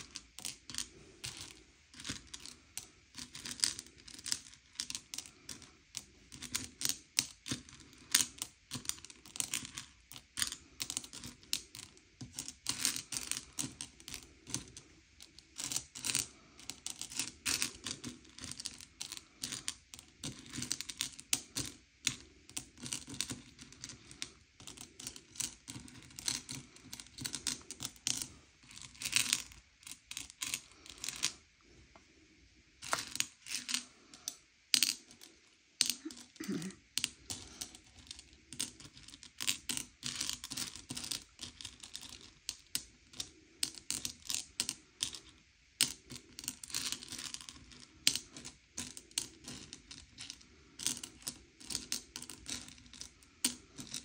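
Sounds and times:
candies clicking in a bowl: 0.0 - 31.4, 32.8 - 54.0.

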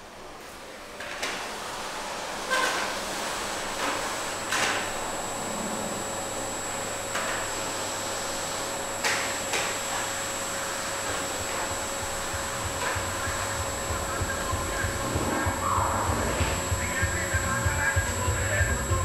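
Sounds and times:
vacuum cleaner running: 0.0 - 19.0
low musical beat: 11.7 - 19.0.

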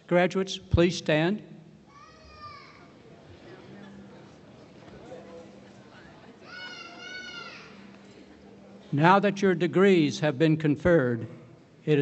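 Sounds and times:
child crying: 1.9 - 2.9, 6.5 - 7.8.

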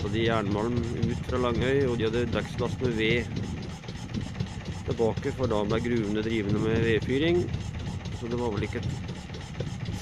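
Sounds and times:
motorboat engine rumbling: 0.0 - 10.0.

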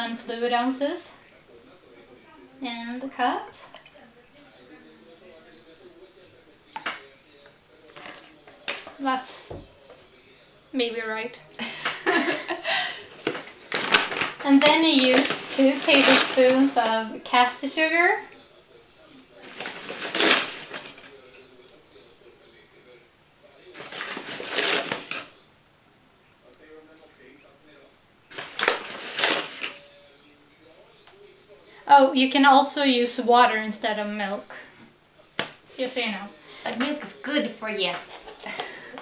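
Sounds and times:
paper bag rustling: 13.1 - 16.9, 19.4 - 21.2, 23.8 - 25.3, 28.3 - 29.8.

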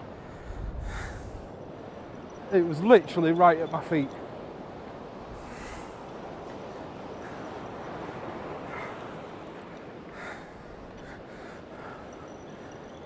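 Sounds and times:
wind rumble on microphone: 0.0 - 13.0.

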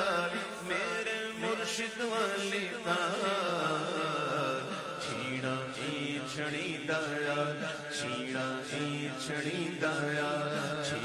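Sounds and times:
men chanting devotional song: 0.0 - 11.0.

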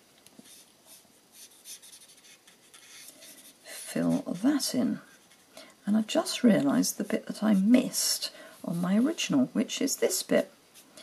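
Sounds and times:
marker rubbing on cardstock: 0.4 - 5.4.

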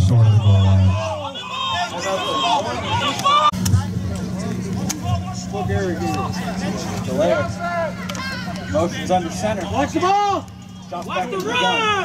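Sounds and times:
spectators calling out: 0.0 - 3.7, 4.6 - 12.0.

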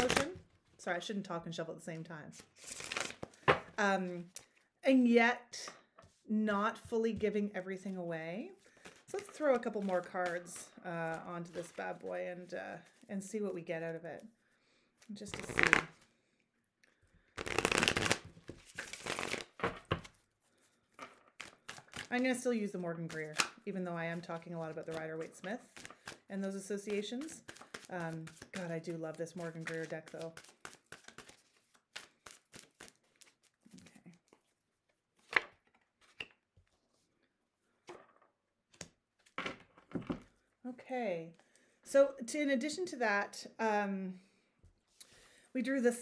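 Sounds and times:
cards being shuffled: 0.0 - 0.4, 2.4 - 3.6, 8.8 - 10.5, 15.2 - 16.0, 17.4 - 20.2, 21.0 - 22.3, 24.4 - 34.6.

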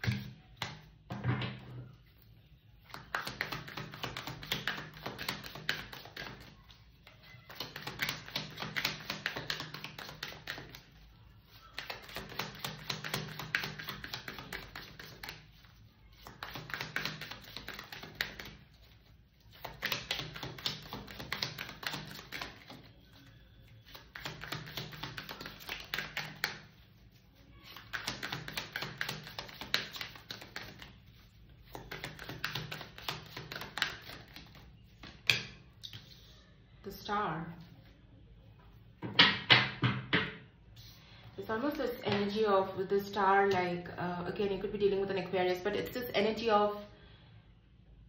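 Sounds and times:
cards being shuffled: 7.4 - 23.2, 23.8 - 36.3.

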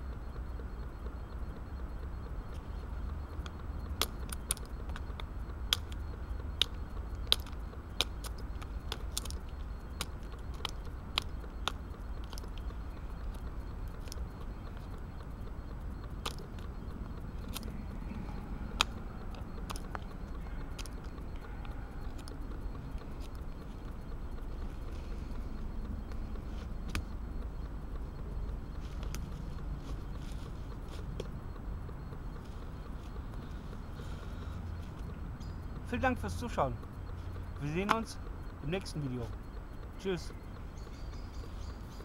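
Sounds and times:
steady low rumble: 0.0 - 42.0.

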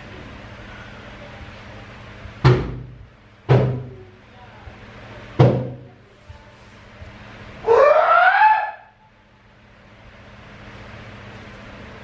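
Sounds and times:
steady low hum: 0.0 - 12.0
wordless cry rising in pitch: 7.6 - 9.0.

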